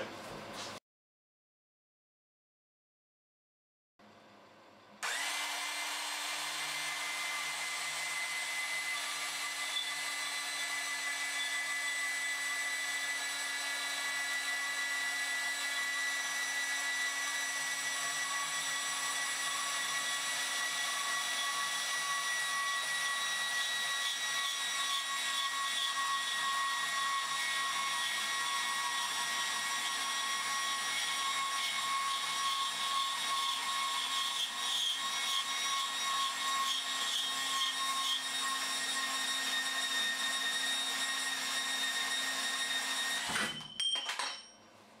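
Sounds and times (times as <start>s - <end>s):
bandsaw cutting metal tube: 5.0s - 43.8s.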